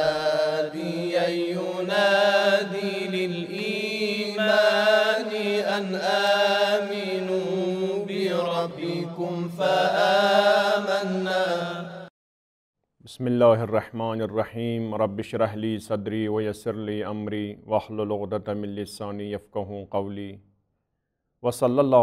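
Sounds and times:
person chanting: 0.0s - 12.1s.

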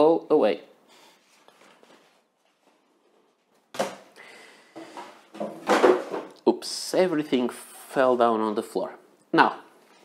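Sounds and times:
paper rustling: 1.1s - 3.7s.

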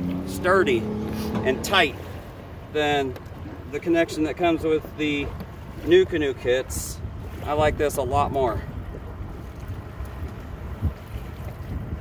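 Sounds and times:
wind buffeting microphone: 5.0s - 12.0s.

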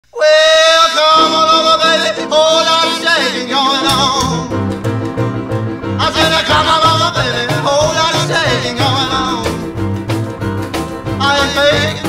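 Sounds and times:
man singing high held note: 0.0s - 4.5s, 6.0s - 9.6s
rock and roll backing instruments: 1.2s - 12.0s.

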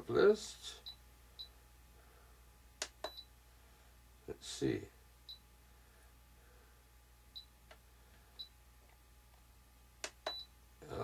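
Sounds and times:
high beeps from transmitter: 10.3s - 10.5s.

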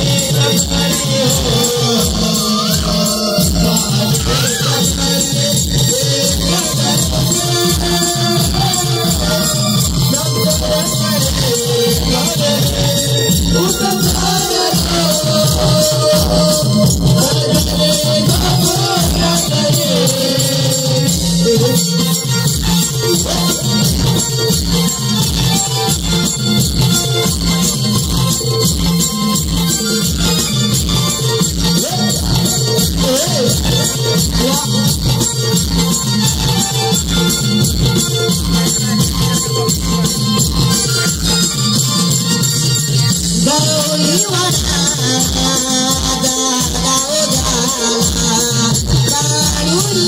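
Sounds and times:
high jingling percussion: 0.0s - 50.0s.

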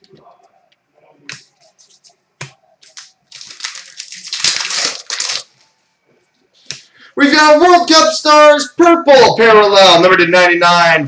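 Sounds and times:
plastic packaging crinkling: 2.8s - 5.7s.

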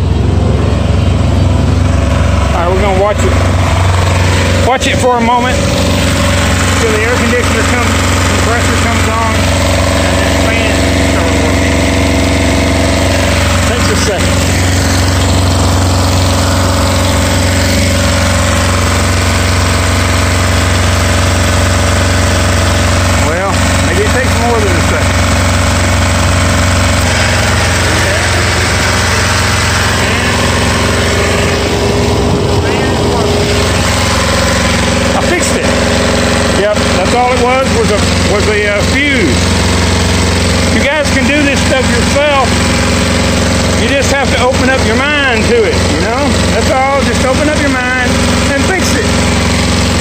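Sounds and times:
small diesel engine running: 0.0s - 50.0s.

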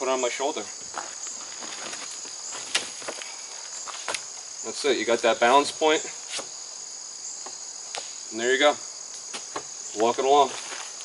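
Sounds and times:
insect chorus trilling: 0.0s - 11.0s.

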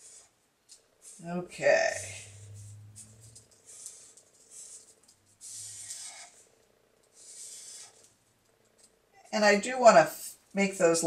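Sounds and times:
marker drawn across paper: 1.9s - 6.5s, 7.1s - 8.1s.

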